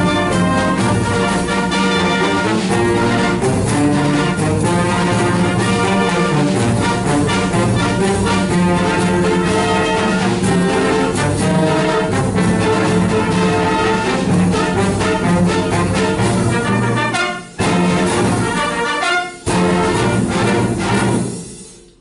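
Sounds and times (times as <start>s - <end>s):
wind band playing: 0.0s - 21.6s
brass instruments: 0.0s - 22.0s.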